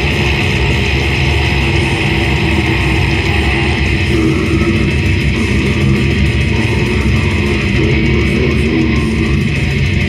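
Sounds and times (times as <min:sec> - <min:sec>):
death metal band playing live: 0:00.0 - 0:10.0
distorted electric guitar: 0:00.0 - 0:10.0
drums: 0:00.0 - 0:10.0.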